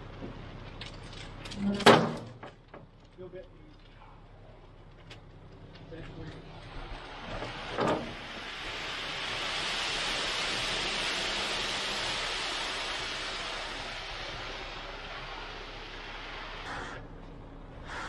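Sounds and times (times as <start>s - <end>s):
wet concrete rushing down chute: 5.9s - 17.0s.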